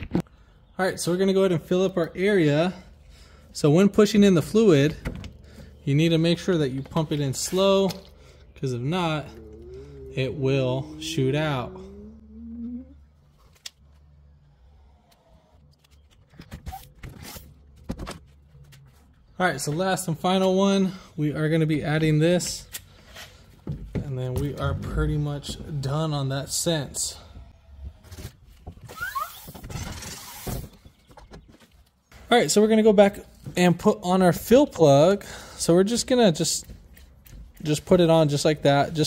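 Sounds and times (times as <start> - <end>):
faint squeak rising in pitch: 8.7 - 13.2
short hissing scraping sounds: 29.0 - 30.7.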